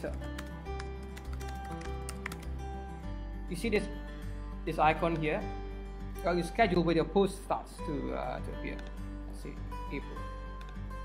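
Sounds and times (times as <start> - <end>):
computer keyboard typing: 0.0 - 2.6
background music: 0.0 - 11.0.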